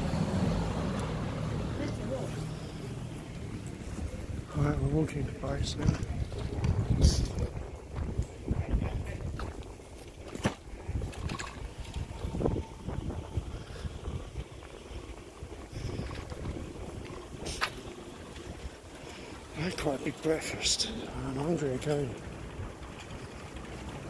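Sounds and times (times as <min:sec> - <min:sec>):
wind rumbling on microphone: 0:02.9 - 0:24.0.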